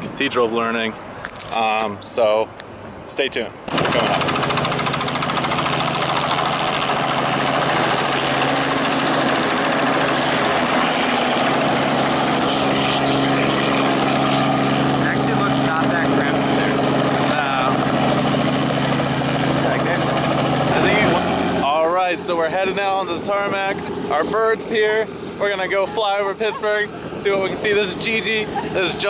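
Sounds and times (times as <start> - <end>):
helicopter engine and rotor drone: 3.7 - 29.0.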